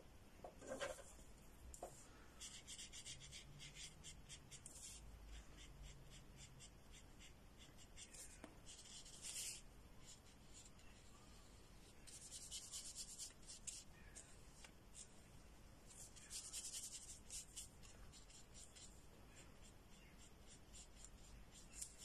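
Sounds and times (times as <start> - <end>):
paintbrush strokes on paper: 1.8 - 15.2, 15.9 - 22.0.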